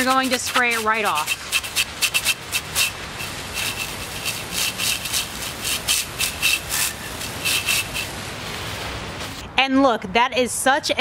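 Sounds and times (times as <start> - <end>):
hose spraying water: 0.0 - 9.4.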